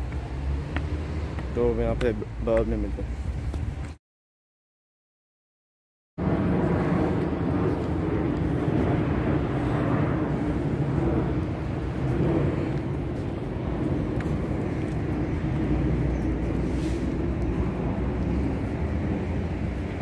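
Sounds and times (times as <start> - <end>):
outdoor background rumble: 0.0 - 4.0, 6.2 - 20.0.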